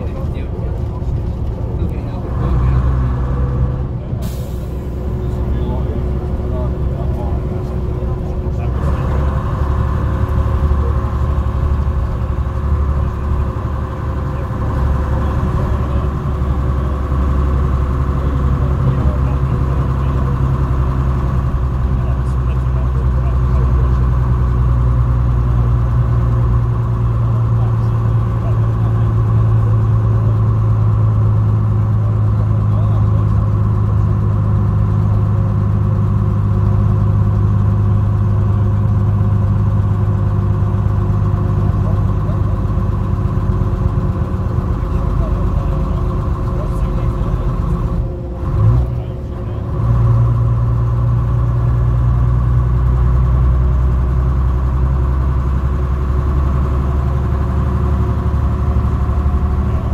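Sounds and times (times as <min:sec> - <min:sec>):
coach engine drone: 0:00.0 - 0:59.9.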